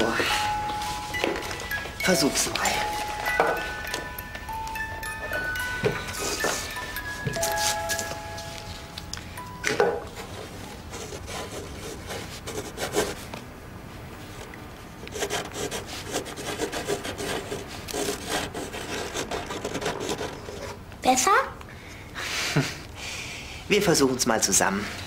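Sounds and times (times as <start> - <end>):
pen scratching on paper: 15.1 - 20.7.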